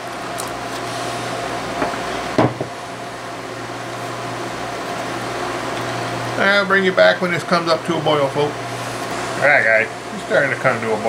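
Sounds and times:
induction cooktop humming: 0.0s - 11.0s.

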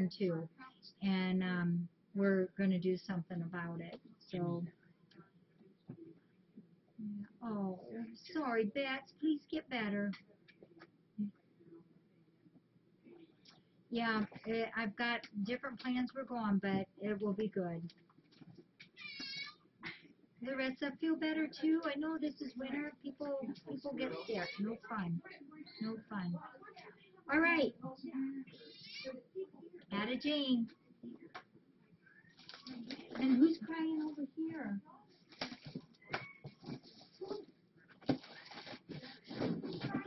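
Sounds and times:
cat meowing: 19.0s - 19.6s.

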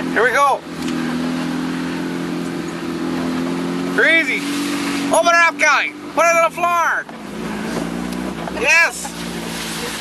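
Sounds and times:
vehicle engine running: 0.0s - 10.0s.

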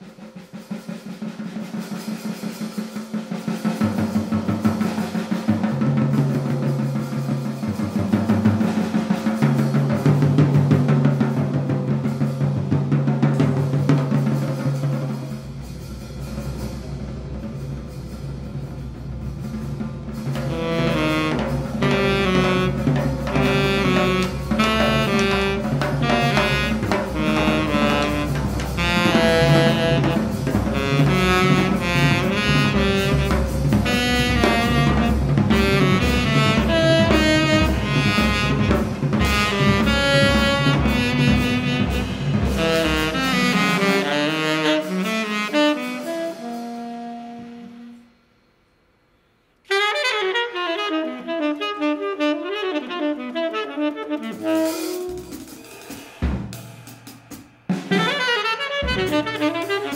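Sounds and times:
jazz drum kit rolls: 0.0s - 48.6s, 49.6s - 59.9s
tenor saxophone runs: 20.5s - 48.2s, 49.7s - 55.5s, 57.9s - 59.9s.

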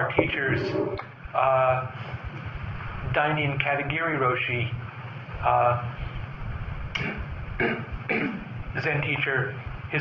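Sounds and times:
man speaking: 0.0s - 2.0s, 8.8s - 10.0s
man clearing his throat: 7.0s - 8.5s.

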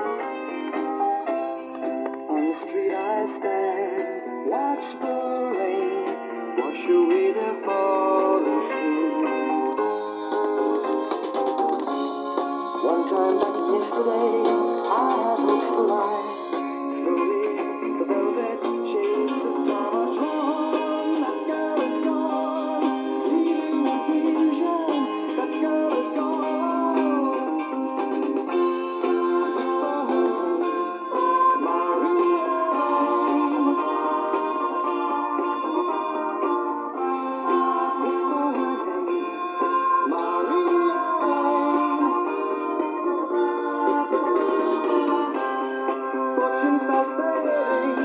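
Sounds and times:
song from boombox speakers: 0.0s - 48.0s.

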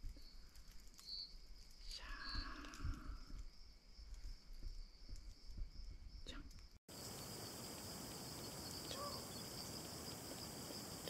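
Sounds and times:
insects trilling: 0.1s - 11.0s
loud insect chirps: 0.1s - 11.0s.

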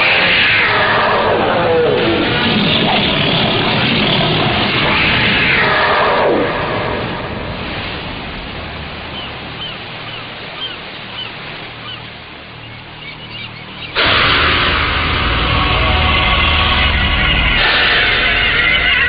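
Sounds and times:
sea surf: 0.0s - 19.0s
bird short high calls: 9.1s - 14.0s
loud film song music: 14.0s - 19.0s.

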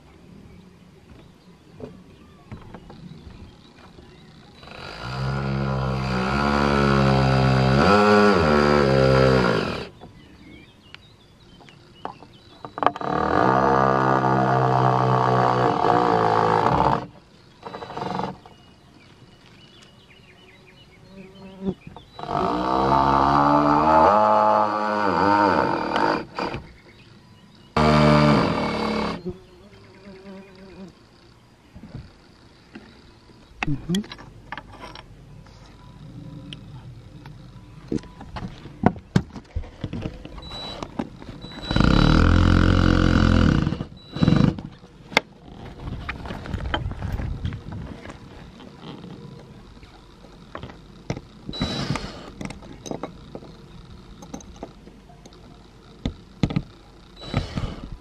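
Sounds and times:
cordless drill driving into wood: 4.6s - 9.9s, 27.8s - 29.3s, 40.4s - 44.7s, 51.1s - 53.0s, 57.2s - 57.9s.

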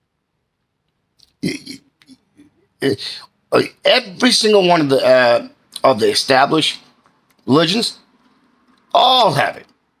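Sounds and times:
man vocal sound: 1.2s - 3.8s.

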